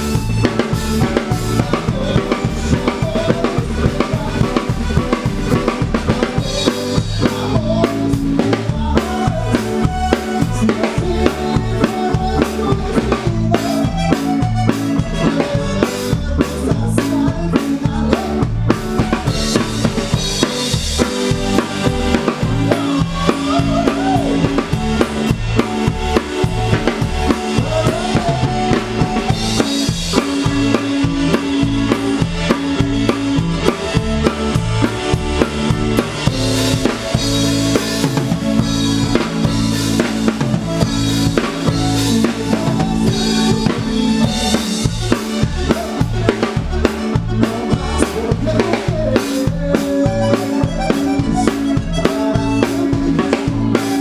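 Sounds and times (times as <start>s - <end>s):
live band playing: 0.0s - 54.0s.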